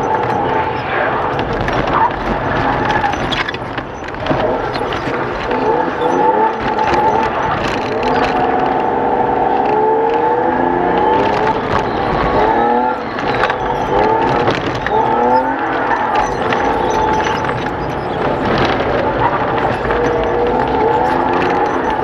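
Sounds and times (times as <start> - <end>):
race car engine revving: 0.0 - 22.0.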